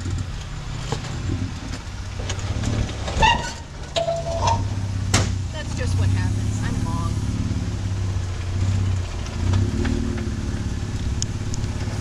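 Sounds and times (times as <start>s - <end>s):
engine droning at a crawl: 0.0s - 12.0s.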